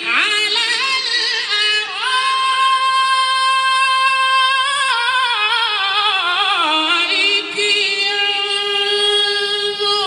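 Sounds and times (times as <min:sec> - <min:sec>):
man reciting melodically: 0:00.0 - 0:10.0.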